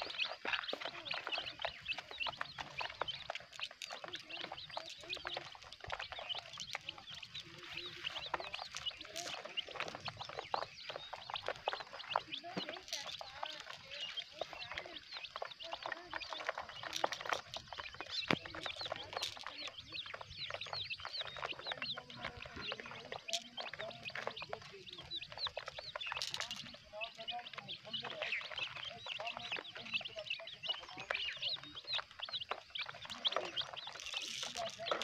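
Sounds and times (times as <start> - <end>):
chicks peeping: 0.0 - 35.0.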